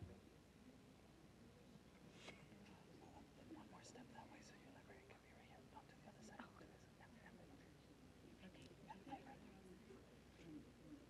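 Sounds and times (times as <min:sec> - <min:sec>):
faint murmured talk: 0:00.0 - 0:11.0.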